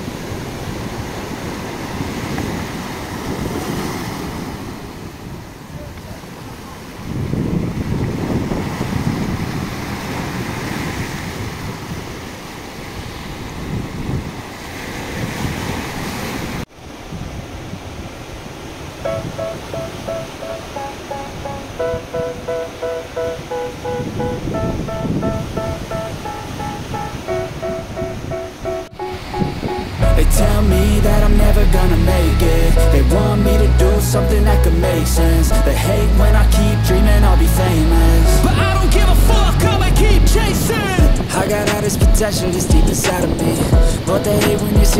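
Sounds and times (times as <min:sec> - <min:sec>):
surf washing onto shore: 0:00.0 - 0:44.9
wind buffeting microphone: 0:00.0 - 0:44.9
melody of short repeated notes: 0:19.1 - 0:40.5.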